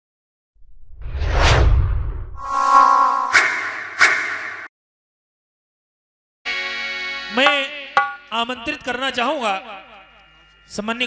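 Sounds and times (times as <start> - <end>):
whoosh: 0.6 - 4.7.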